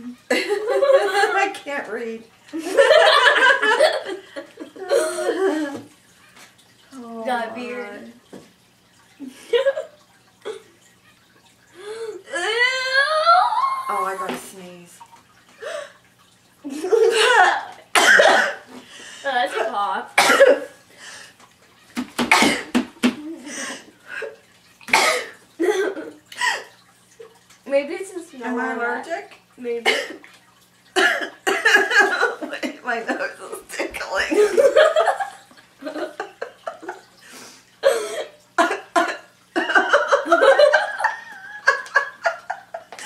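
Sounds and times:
woman coughing: 18.0 - 18.6, 20.2 - 20.7, 22.3 - 22.8, 24.9 - 26.0, 29.8 - 30.2, 31.0 - 31.8.

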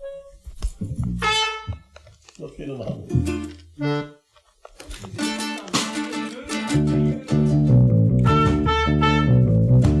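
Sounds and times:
brass instrument notes: 0.0 - 1.9, 3.8 - 4.3, 8.2 - 9.8.

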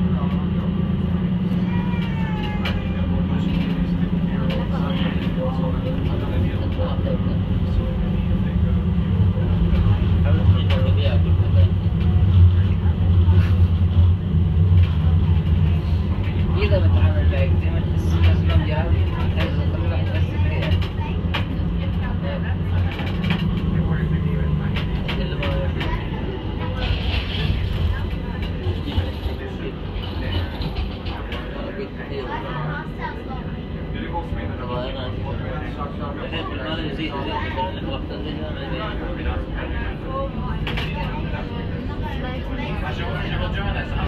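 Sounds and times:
indistinct passenger voices: 0.0 - 44.0
tram rumbling: 0.0 - 44.0.

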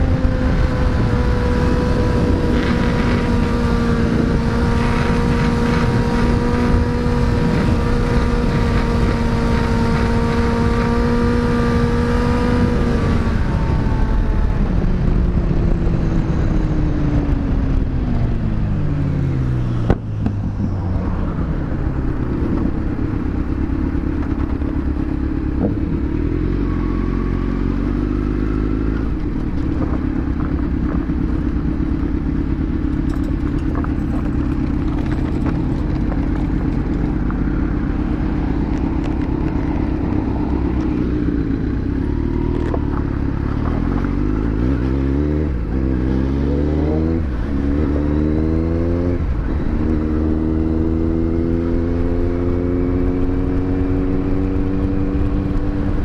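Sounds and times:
motorcycle engine: 0.0 - 56.0.

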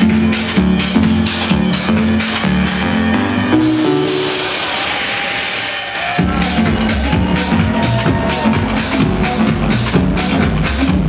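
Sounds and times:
synthesized noise sweep: 2.2 - 6.9.

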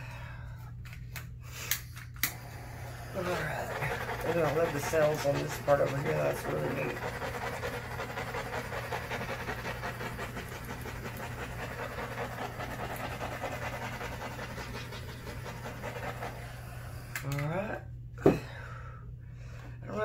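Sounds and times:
butane torch flame hissing: 2.2 - 17.3.

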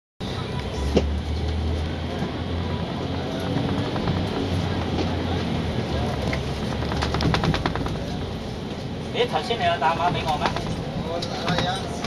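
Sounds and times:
bus engine drone: 0.2 - 12.0.

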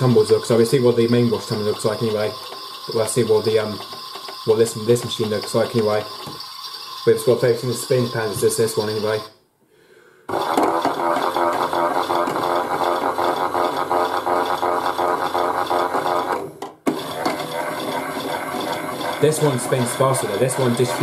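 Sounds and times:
toy washing machine whirring: 0.0 - 9.4, 10.3 - 21.0.

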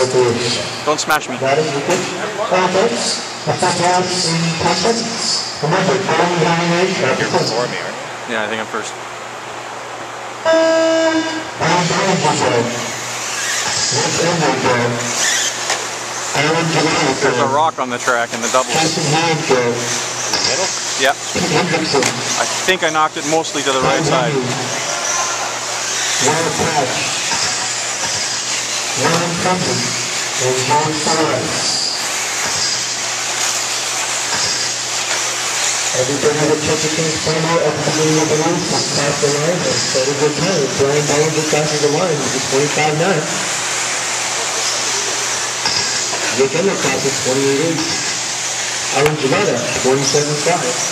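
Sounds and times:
high motor whine: 0.0 - 50.9
steady wash of noise: 11.2 - 50.9.

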